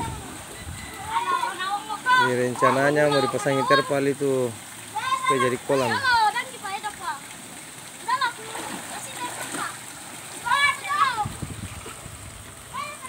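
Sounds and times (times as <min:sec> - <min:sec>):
children calling: 0:00.0 - 0:07.3, 0:08.0 - 0:11.4, 0:12.7 - 0:13.0
water splashing in a stream: 0:00.0 - 0:13.0.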